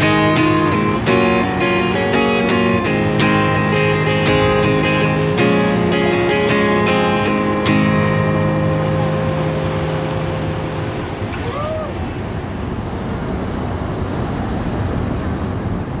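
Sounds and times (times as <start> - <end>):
acoustic guitar chord ringing: 0.0 - 11.3
river water: 0.0 - 16.0
wind: 0.0 - 16.0.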